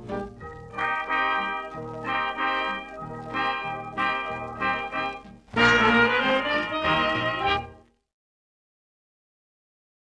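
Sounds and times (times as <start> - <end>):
brass held chords: 0.0 - 7.9
swing dance band playing: 0.0 - 7.9.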